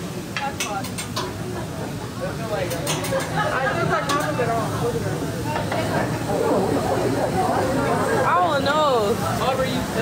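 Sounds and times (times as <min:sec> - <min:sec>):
indistinct voices: 0:05.2 - 0:09.4.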